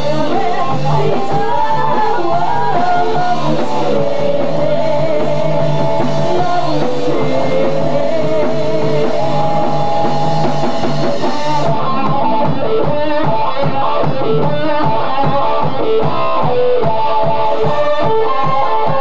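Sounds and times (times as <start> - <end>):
bass guitar: 0.0 - 19.0
drum kit beat: 0.0 - 19.0
electric guitar: 0.0 - 19.0.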